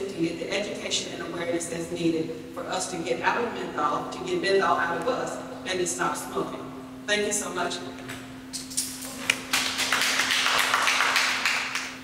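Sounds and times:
audience applauding: 0:09.2 - 0:12.0.

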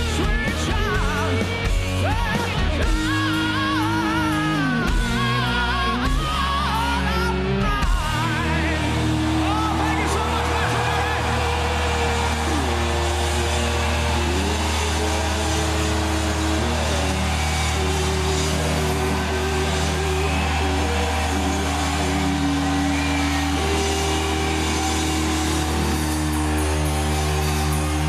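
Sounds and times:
crowd noise: 0:00.0 - 0:28.0
electric guitar sustained notes: 0:00.0 - 0:28.0.

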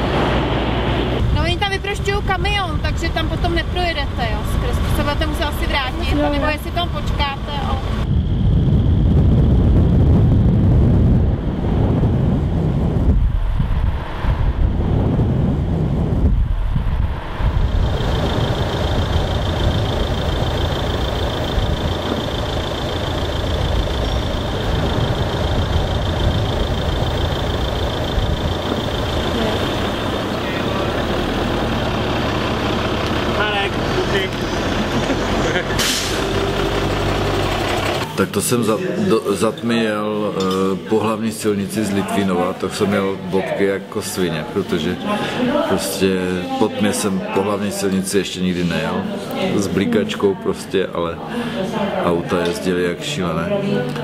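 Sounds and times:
heavy low rumble: 0:00.0 - 0:38.1
vehicle road and engine noise: 0:00.0 - 0:40.9, 0:53.0 - 0:54.0.

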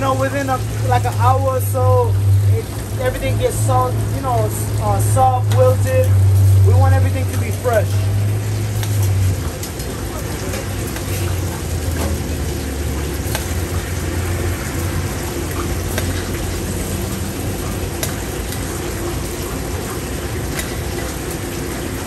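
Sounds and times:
food sizzling: 0:00.0 - 0:22.0.

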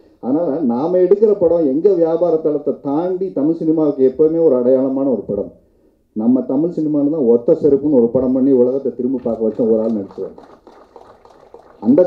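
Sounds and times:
man speaking into a microphone: 0:00.2 - 0:05.6, 0:06.2 - 0:10.4, 0:11.8 - 0:12.0.

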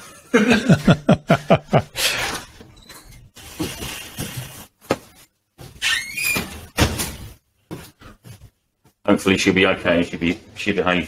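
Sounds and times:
rustling and shuffling at a desk: 0:07.2 - 0:10.7.

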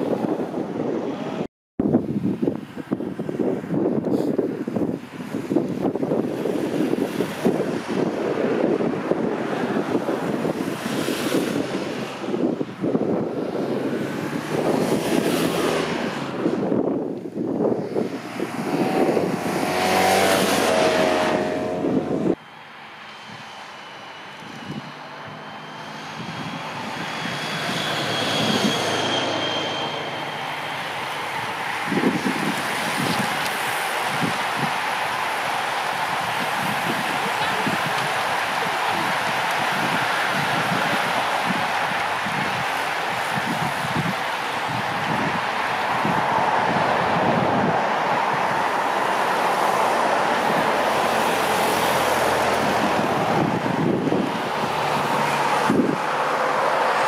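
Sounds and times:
wind buffeting microphone: 0:00.0 - 0:22.4, 0:23.1 - 0:57.0
car passing: 0:02.4 - 0:57.0
motorcycle passing: 0:13.4 - 0:16.8, 0:17.6 - 0:22.4, 0:24.3 - 0:47.7, 0:48.3 - 0:57.0.

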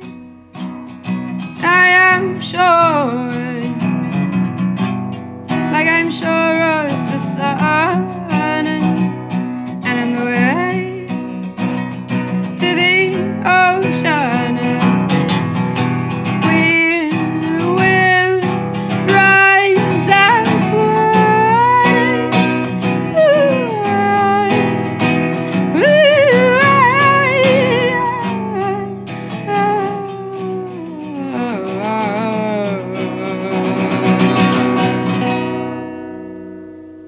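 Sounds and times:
woman singing: 0:00.0 - 0:00.2, 0:01.3 - 0:04.4, 0:05.5 - 0:35.7
acoustic resonator guitar: 0:00.0 - 0:37.0.

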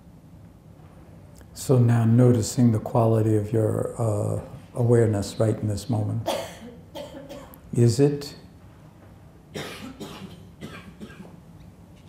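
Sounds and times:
low room hum: 0:00.0 - 0:12.0
faint audience coughs: 0:06.3 - 0:07.6, 0:09.5 - 0:11.4.

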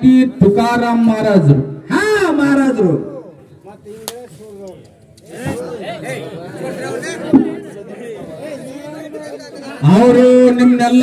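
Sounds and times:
man speaking over microphone: 0:00.0 - 0:07.4, 0:08.1 - 0:11.0
men talking quietly: 0:03.1 - 0:11.0.

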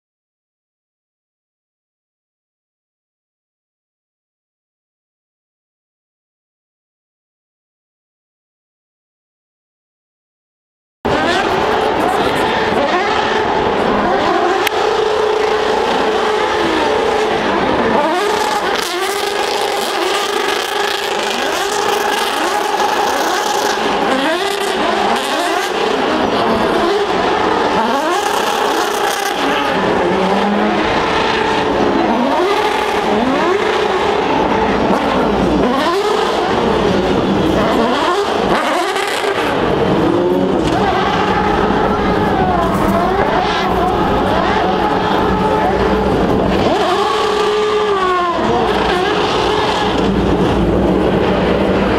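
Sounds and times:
race cars passing at speed: 0:11.1 - 0:51.9.

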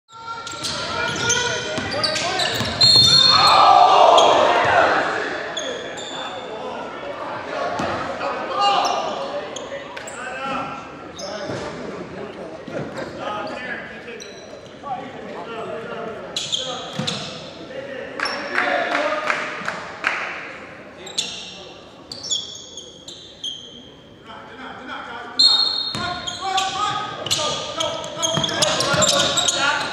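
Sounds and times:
sneakers squeaking on court: 0:00.1 - 0:03.6, 0:05.6 - 0:06.4, 0:14.2 - 0:14.8, 0:16.3 - 0:17.6, 0:21.0 - 0:24.1, 0:25.4 - 0:29.9
players' voices: 0:00.1 - 0:29.9
basketball bouncing: 0:02.6 - 0:03.1.

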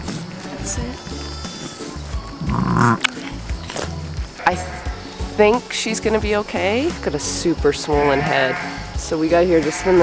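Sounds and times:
background music with low beat: 0:00.0 - 0:10.0
sheep bleating loudly: 0:01.0 - 0:03.0, 0:04.4 - 0:05.0, 0:07.9 - 0:08.9.

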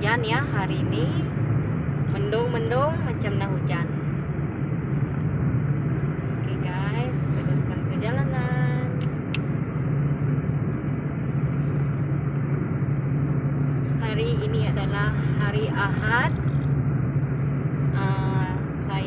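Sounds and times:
car engine drone: 0:00.0 - 0:19.0.

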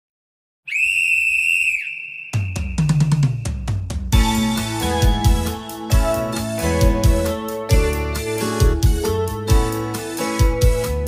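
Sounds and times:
high whistle-like tone: 0:00.7 - 0:03.7.

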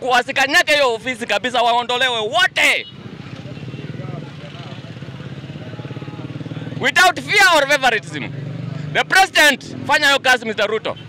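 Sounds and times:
motorcycle engine running: 0:01.0 - 0:10.2
faint chatter of people: 0:03.0 - 0:06.8.

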